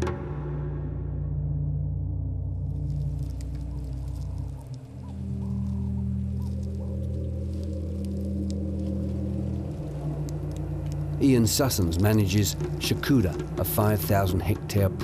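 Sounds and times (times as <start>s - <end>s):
low musical drone: 0.0s - 15.0s
faint ticks and crackles: 2.7s - 15.0s.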